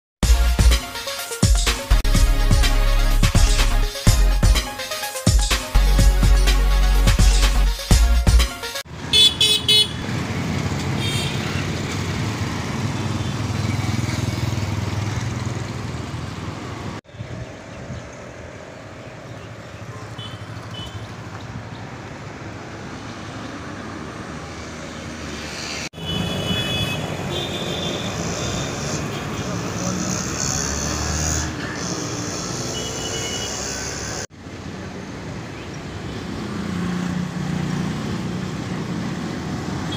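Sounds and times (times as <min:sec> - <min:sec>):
horns honking: 0:08.5 - 0:10.1, 0:11.0 - 0:11.7, 0:20.2 - 0:21.1, 0:26.0 - 0:34.3
vehicle and motorbike engines: 0:08.8 - 0:39.9.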